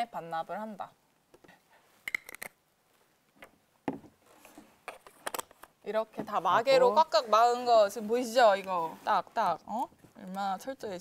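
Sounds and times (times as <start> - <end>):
plastic caps clicking and snapping: 2.1 - 2.6, 4.9 - 5.7.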